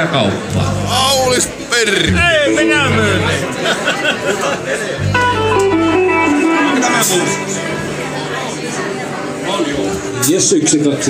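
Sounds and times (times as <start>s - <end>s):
room chatter: 0.0s - 11.0s
electric guitar notes: 0.5s - 4.0s, 5.0s - 10.5s.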